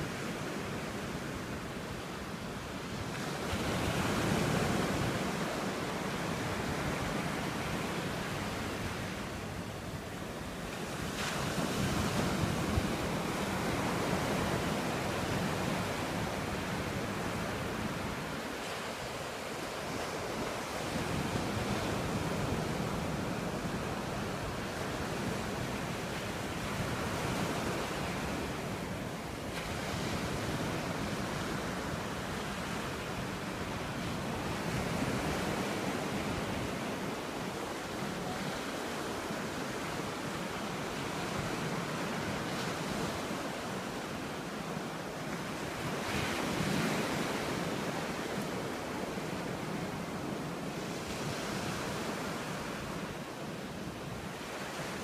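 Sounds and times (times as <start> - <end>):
surf washing up beach: 0.0 - 55.0.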